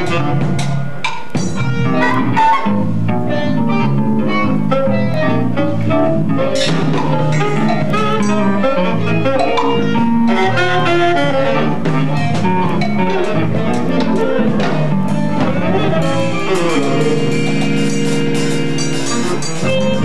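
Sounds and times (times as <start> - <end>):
live jazz quartet playing: 0.0 - 20.0.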